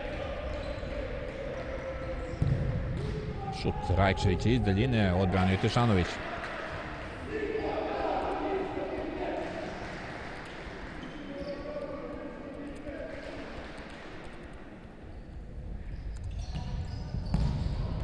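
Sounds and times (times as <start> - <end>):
players shouting with echo: 3.2 - 10.1.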